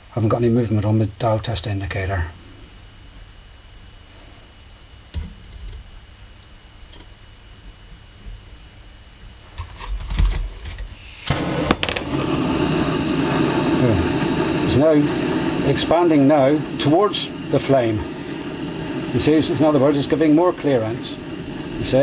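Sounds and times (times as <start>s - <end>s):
flame hissing: 9.4s - 22.0s
gas torch lighting: 9.5s - 22.0s.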